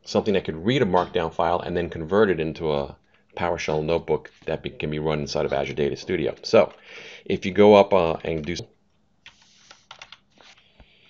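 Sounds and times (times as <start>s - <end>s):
computer keyboard typing: 9.3s - 10.3s.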